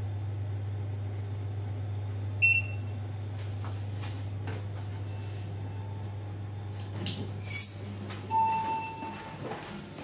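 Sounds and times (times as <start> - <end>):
elevator hum: 0.0 - 10.0
elevator arrival ding: 2.4 - 3.3, 7.5 - 9.7.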